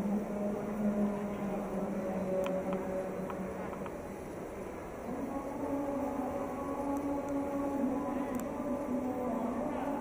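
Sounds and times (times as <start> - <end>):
faint steady tones: 0.0 - 10.0
hum and murmur of large hall: 0.0 - 10.0.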